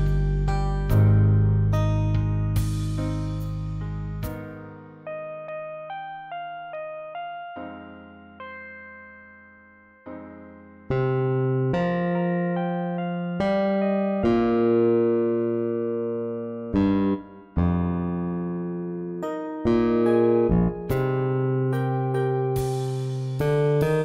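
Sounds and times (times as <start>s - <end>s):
electric bass guitar melody: 0.0s - 8.7s, 10.9s - 24.0s.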